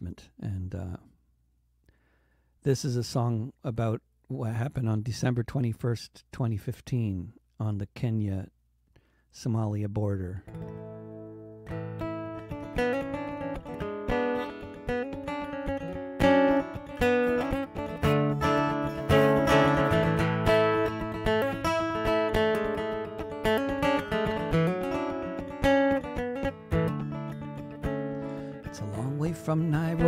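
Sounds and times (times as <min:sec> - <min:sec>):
acoustic guitar strumming: 0:10.4 - 0:30.0.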